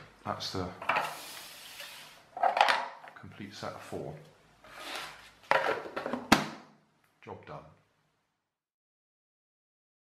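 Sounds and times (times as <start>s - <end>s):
plastic box clattering on a table: 2.4s - 3.2s, 5.5s - 6.6s.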